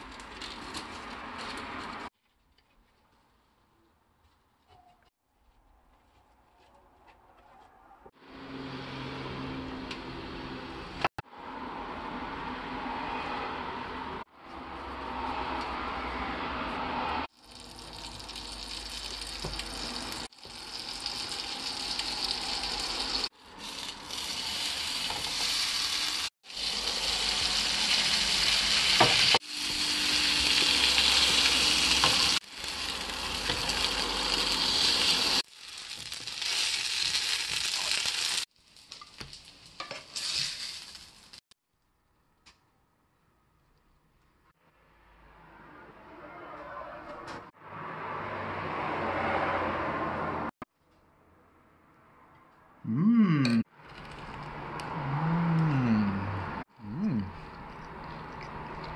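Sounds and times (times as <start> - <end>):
bread sizzling in oil: 17.4 - 41.4.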